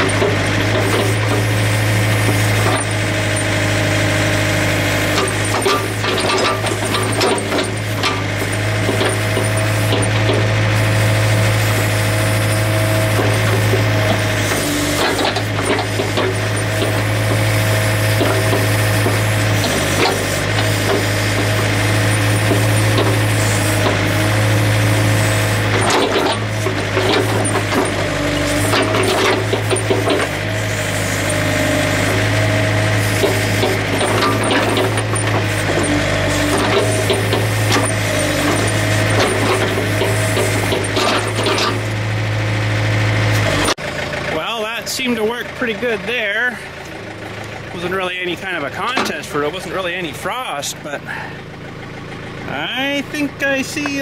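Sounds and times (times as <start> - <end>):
diesel engine running under load: 0.0 - 54.0.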